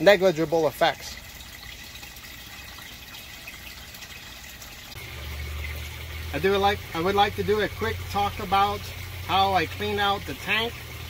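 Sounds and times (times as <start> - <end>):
water trickling and flowing: 0.0 - 11.0
low steady rumble: 4.9 - 11.0.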